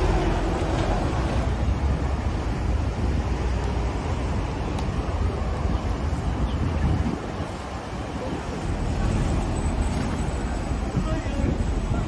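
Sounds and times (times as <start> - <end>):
road traffic rumble: 0.0 - 12.0
wind buffeting microphone: 0.0 - 12.0.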